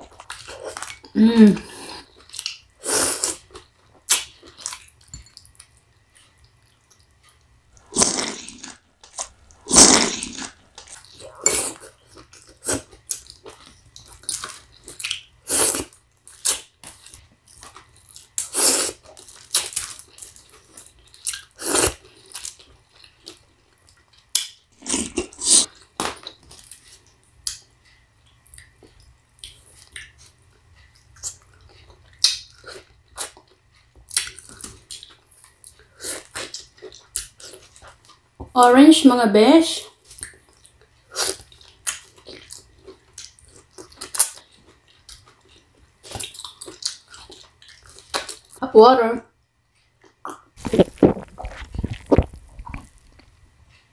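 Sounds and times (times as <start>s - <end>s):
biting and chewing: 50.0s - 53.4s.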